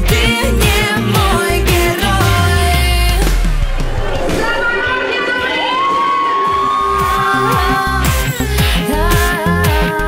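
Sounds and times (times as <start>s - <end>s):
pop band beat: 0.0s - 10.0s.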